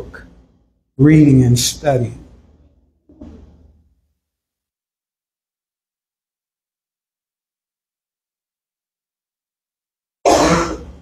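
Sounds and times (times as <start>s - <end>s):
man clearing his throat: 10.3s - 11.0s.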